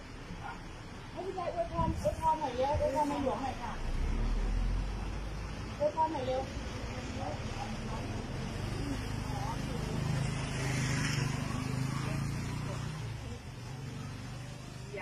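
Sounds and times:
faint voices: 0:00.0 - 0:15.0
vehicle passing with tyre hiss: 0:00.1 - 0:15.0.

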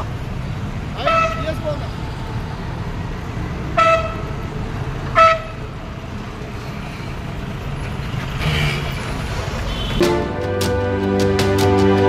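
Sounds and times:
road traffic rumble: 0:00.0 - 0:12.0
vehicle horn toots: 0:03.8 - 0:04.2, 0:09.7 - 0:11.0.

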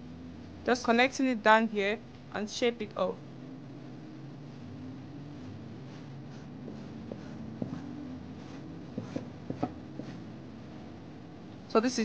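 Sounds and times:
faint low hum: 0:00.0 - 0:12.0
marking tool scratching fabric: 0:05.4 - 0:10.2.

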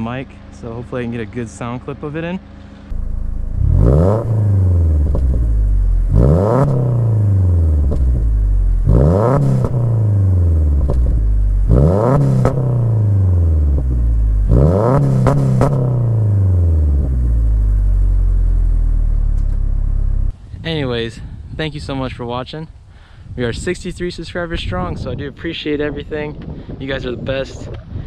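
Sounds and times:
car engine idling: 0:00.0 - 0:20.3
car engine revving: 0:02.9 - 0:20.3.

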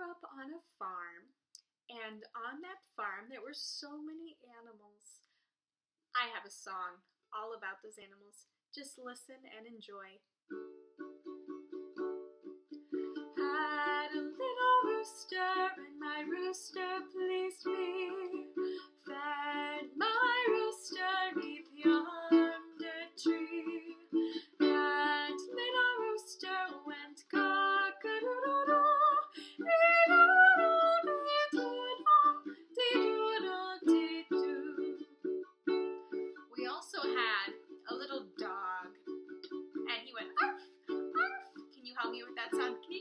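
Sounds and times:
ukulele strumming: 0:10.5 - 0:43.0
woman singing: 0:13.4 - 0:35.0, 0:36.5 - 0:39.0, 0:39.8 - 0:43.0.

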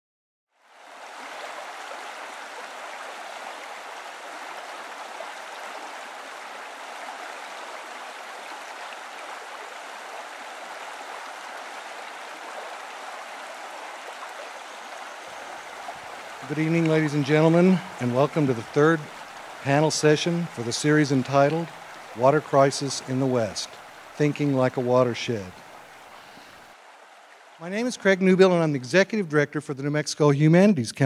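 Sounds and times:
stream water rushing: 0:00.6 - 0:29.0.

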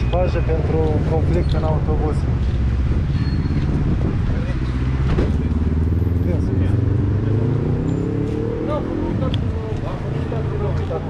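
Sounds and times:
vehicle engine speeding up: 0:02.6 - 0:10.8.

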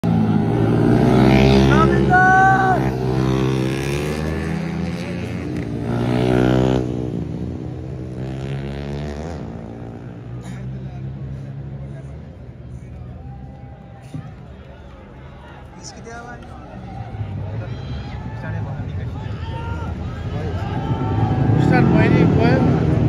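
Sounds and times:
motorcycle engine revving hard: 0:02.7 - 0:10.1.

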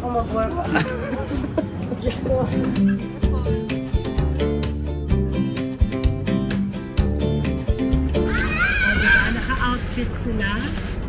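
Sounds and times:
plucked guitar music: 0:00.0 - 0:08.6
child squealing: 0:08.2 - 0:09.4.

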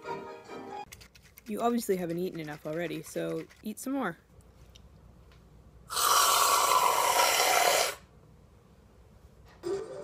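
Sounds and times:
aerosol can hissing: 0:05.9 - 0:08.0.

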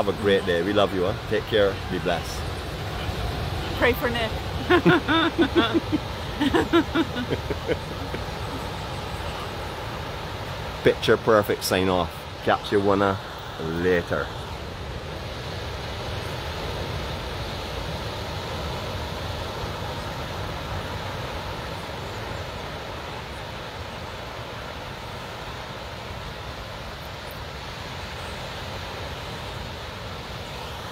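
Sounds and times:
surf breaking on beach: 0:00.0 - 0:30.9.

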